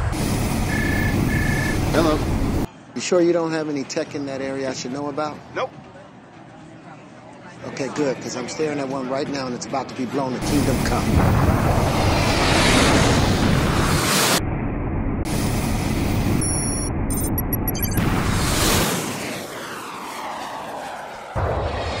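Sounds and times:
jet noise rush: 0.0s - 2.7s, 10.4s - 22.0s
electronic bleeps: 0.7s - 1.8s, 16.4s - 18.0s.

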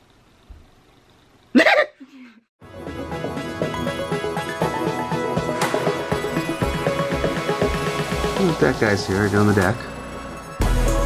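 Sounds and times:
background music: 2.6s - 11.0s.

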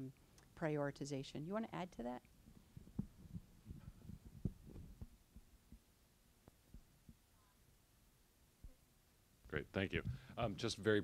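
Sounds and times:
microphone handling thumps: 2.4s - 5.9s, 9.9s - 10.4s.

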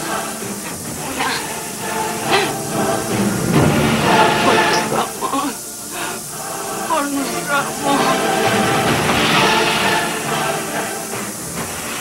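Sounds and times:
faint music: 0.0s - 12.0s
rushing hiss: 0.0s - 12.0s.

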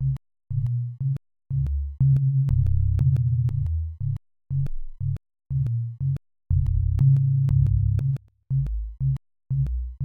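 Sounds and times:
clicks on bass notes: 0.0s - 10.0s
electronic music with deep bass: 6.5s - 10.0s.

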